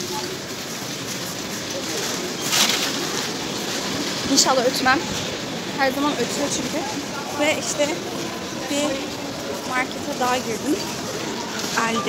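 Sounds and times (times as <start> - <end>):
background voices and movement: 0.0 - 12.0
loud rustle: 0.0 - 12.0.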